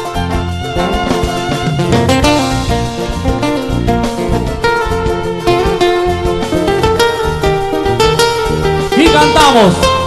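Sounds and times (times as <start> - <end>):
violins playing melody: 0.0 - 9.5
strummed guitar: 0.0 - 10.0
steady beat: 0.1 - 10.0.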